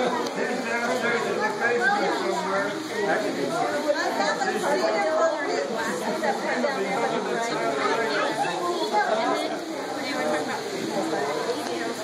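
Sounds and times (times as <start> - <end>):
crowd chatter in large hall: 0.0 - 12.0.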